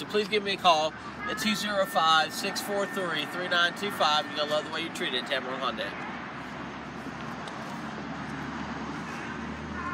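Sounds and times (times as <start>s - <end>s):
low traffic rumble: 0.0s - 9.9s
traffic rush: 0.0s - 9.9s.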